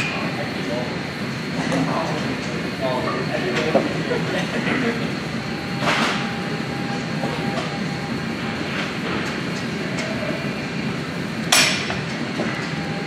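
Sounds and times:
faint voices: 0.0s - 11.4s
rumble of machines and air handling: 0.0s - 13.0s.

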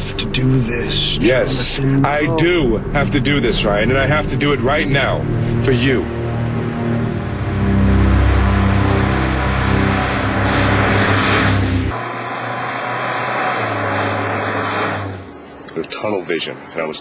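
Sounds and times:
background music with ticking beat: 0.0s - 12.0s
car engine running: 0.0s - 16.1s
road noise: 0.0s - 17.0s.

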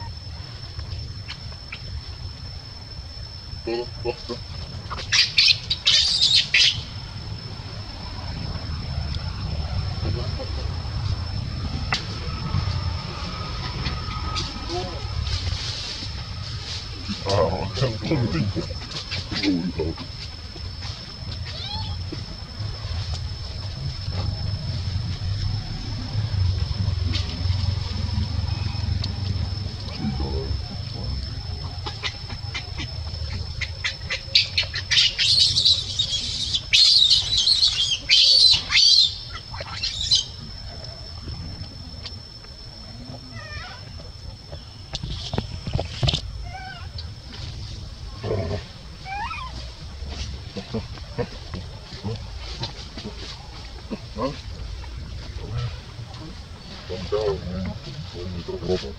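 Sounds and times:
baby monkey screaming: 4.9s - 6.9s, 21.4s - 22.0s, 33.8s - 40.3s, 49.0s - 49.6s.

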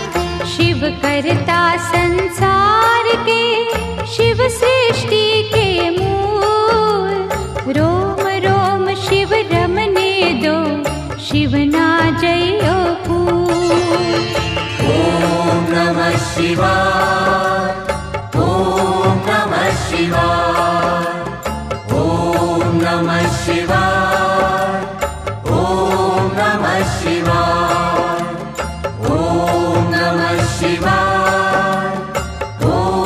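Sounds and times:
steady musical accompaniment: 0.0s - 33.0s
chanted mantra: 14.8s - 21.3s, 29.0s - 33.0s.

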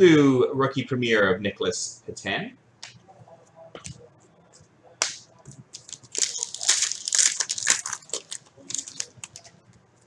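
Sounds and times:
foil wrapper crinkling: 5.7s - 9.6s.

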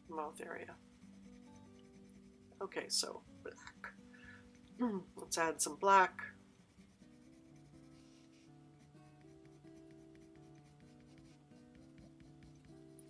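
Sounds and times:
colored pencil scratching paper: 0.0s - 13.0s
soft background music: 0.0s - 13.0s.

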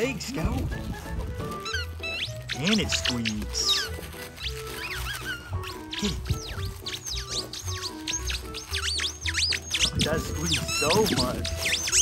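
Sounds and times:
background music: 0.0s - 12.0s
squeaky toy squeaking: 0.6s - 12.0s.

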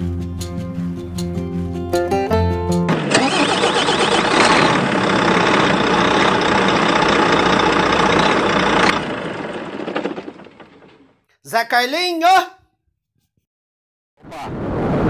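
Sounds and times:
guitar music: 0.0s - 3.1s
truck engine running loudly: 2.9s - 11.2s.

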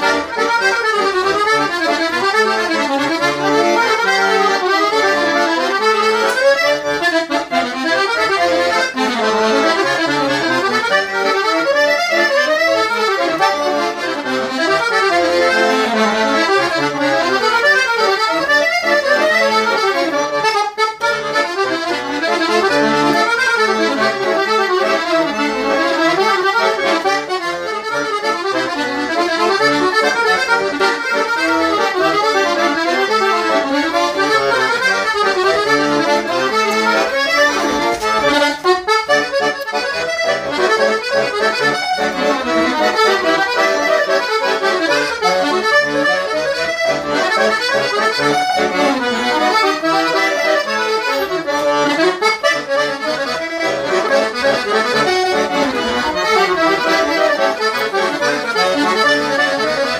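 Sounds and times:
accordion melody with bass: 0.0s - 59.9s.

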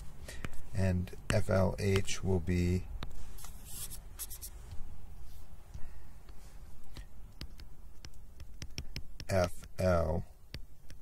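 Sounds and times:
stylus scratching on screen: 3.0s - 5.5s, 6.4s - 11.0s.

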